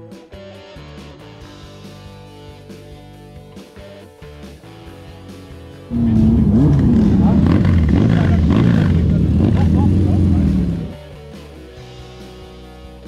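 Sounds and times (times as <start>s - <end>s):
motorcycle engine running loudly: 5.9s - 11.0s
quiet guitar music: 5.9s - 11.0s.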